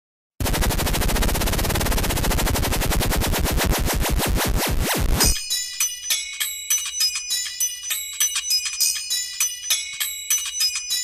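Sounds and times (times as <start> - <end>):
electronic stutter rattle: 0.4 - 5.5.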